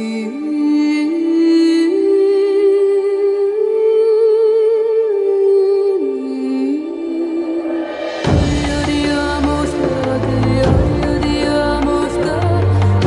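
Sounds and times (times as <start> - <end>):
woman singing slow melody: 0.0 - 13.0.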